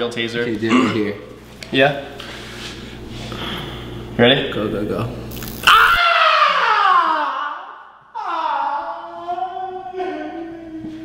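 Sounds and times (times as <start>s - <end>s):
taser hissing crackle: 5.3s - 6.0s.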